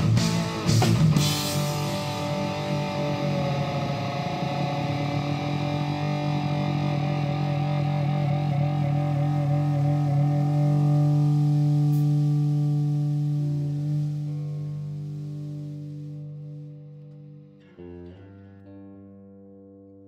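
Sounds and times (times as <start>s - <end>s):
distorted electric guitar chord: 0.0s - 19.6s.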